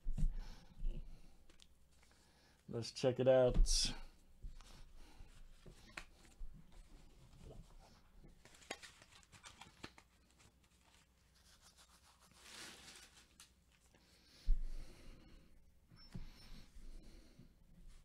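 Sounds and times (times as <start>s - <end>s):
rustling: 4.4s - 14.0s.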